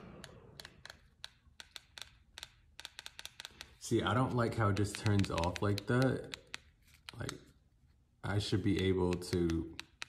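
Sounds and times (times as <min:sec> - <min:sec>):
remote control buttons clicking: 0:00.0 - 0:03.8, 0:04.4 - 0:07.4, 0:08.6 - 0:10.0.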